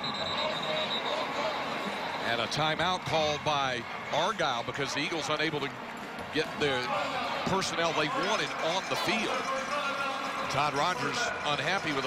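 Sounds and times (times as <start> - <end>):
faint high whistle: 0.0 - 2.3
stadium crowd noise: 0.0 - 12.0.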